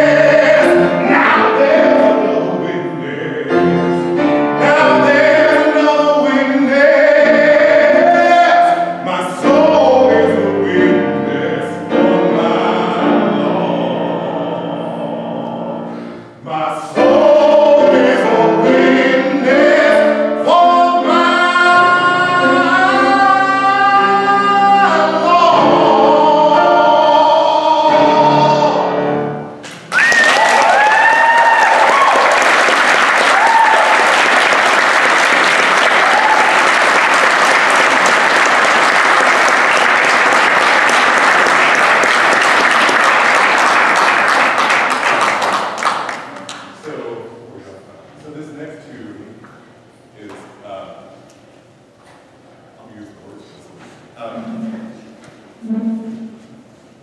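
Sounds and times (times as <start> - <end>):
man singing: 0.0 - 29.3
piano accompaniment: 0.0 - 29.9, 32.6 - 47.4
audience applause: 29.7 - 46.7
audience cheering: 29.8 - 45.1.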